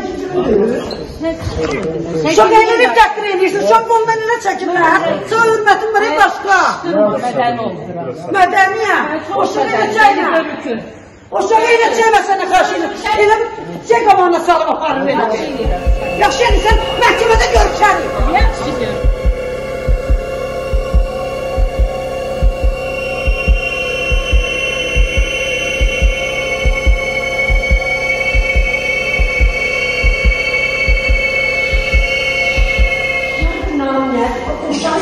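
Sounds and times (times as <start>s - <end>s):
sustained synth drone: 15.2s - 35.0s
heartbeat-like bass thumps: 15.6s - 33.9s.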